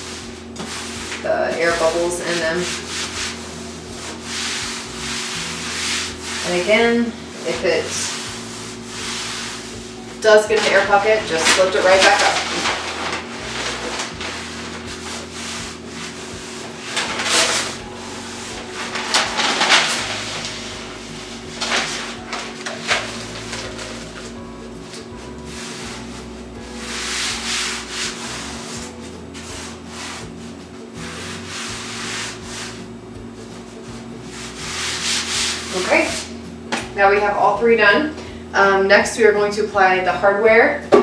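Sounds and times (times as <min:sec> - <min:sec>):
contact paper rustling and swishing: 0:00.0 - 0:36.4
hands rubbing paper on wood: 0:00.0 - 0:36.4.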